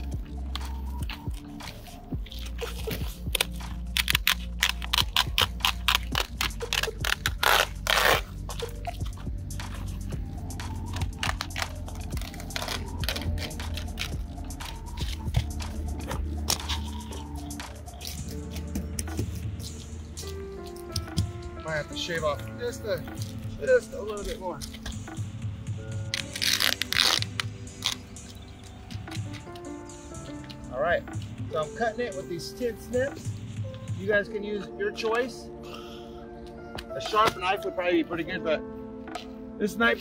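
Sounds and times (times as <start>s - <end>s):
background music with low bass: 0.0s - 40.0s.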